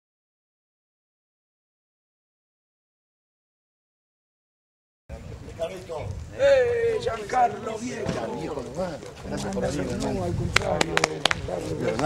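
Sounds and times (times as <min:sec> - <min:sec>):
people greeting: 0:05.1 - 0:12.0.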